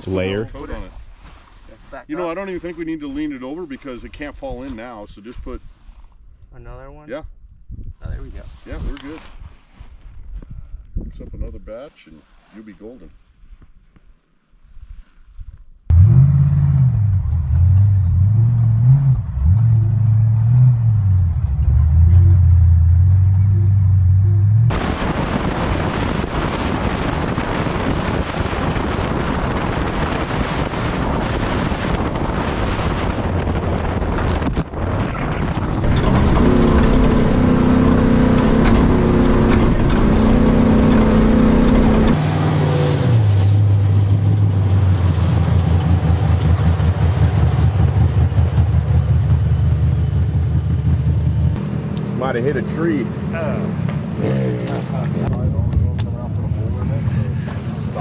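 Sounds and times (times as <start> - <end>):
wind and road noise: 0.0 - 58.0
truck engine revving: 15.9 - 55.8.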